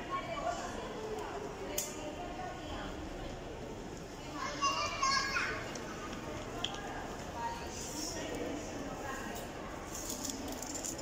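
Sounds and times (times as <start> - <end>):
murmur of people in a hall: 0.0 - 11.0.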